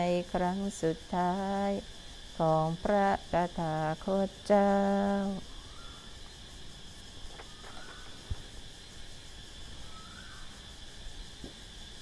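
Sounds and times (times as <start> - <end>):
woman chanting: 0.0 - 6.1
insect drone: 0.0 - 12.0.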